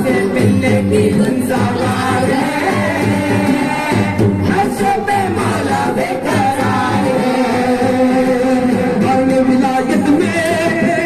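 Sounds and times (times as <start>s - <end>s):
male voices singing into microphones: 0.0s - 11.0s.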